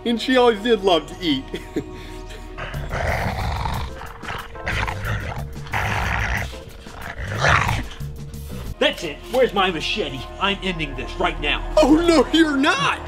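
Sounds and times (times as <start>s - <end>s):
background music: 0.0s - 13.0s
woman making zombie growls: 2.6s - 8.1s
eating noises: 2.6s - 8.7s.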